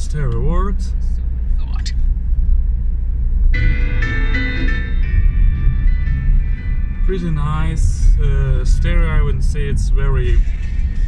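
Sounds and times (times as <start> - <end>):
car engine rumble: 0.0 - 11.0
road noise: 0.0 - 11.0
car stereo music: 3.5 - 11.0.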